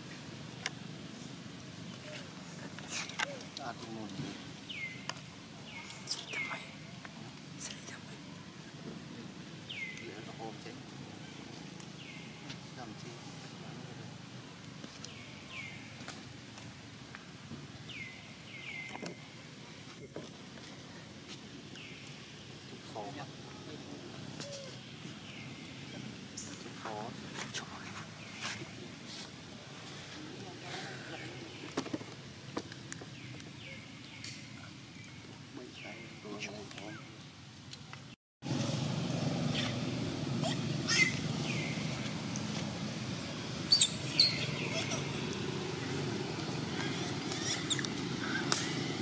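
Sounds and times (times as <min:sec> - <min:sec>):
outdoor background noise: 0:00.0 - 0:49.0
high whistled bird calls: 0:43.7 - 0:45.0.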